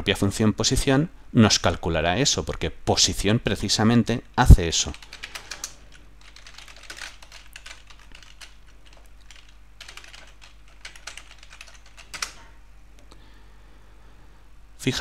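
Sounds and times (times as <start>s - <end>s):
typing on computer keyboard: 4.9s - 12.5s.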